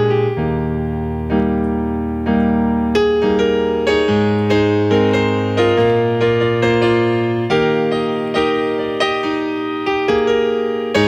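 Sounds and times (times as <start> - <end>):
slow keyboard chords: 0.0 - 11.0.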